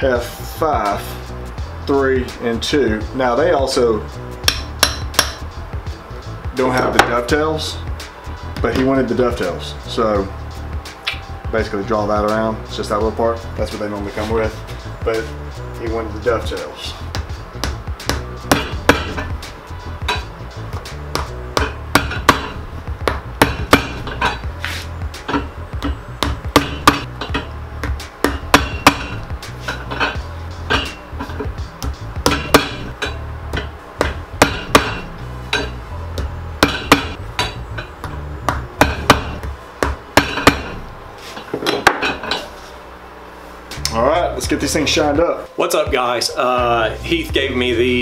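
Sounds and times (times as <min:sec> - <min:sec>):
hammer tapping nails on metal: 0:04.4 - 0:05.5, 0:25.3 - 0:27.5, 0:31.8 - 0:35.8.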